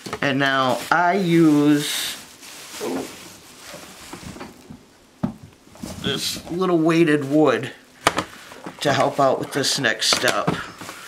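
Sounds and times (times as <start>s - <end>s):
plastic strands crinkling: 0.0s - 11.0s.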